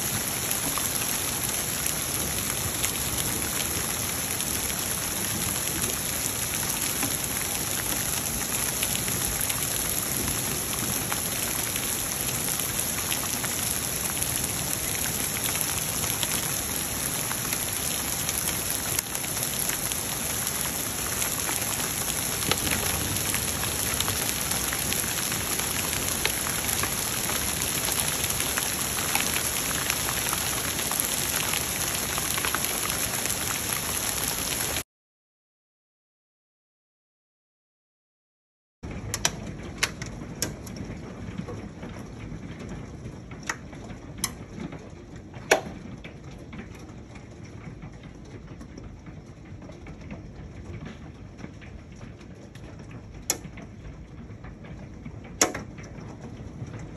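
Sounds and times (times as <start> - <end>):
hailstones ticking: 0.0 - 34.8
heavy rain hiss: 0.0 - 34.8.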